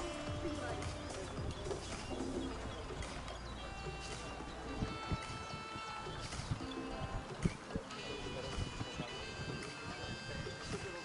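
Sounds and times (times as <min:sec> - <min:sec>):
dove cooing: 0:00.0 - 0:08.6
faint background music: 0:00.0 - 0:11.0
high bird notes: 0:00.0 - 0:11.0.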